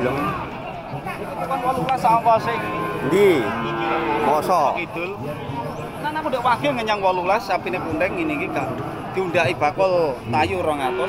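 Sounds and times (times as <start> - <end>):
cow mooing: 2.3 - 4.7, 7.7 - 9.4, 10.4 - 11.0.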